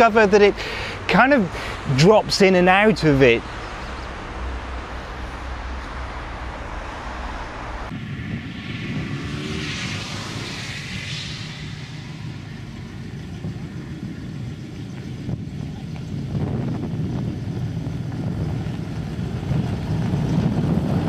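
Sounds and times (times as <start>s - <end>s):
car engine rumbling: 0.0s - 21.0s
street traffic: 0.0s - 21.0s
van passing: 0.0s - 21.0s.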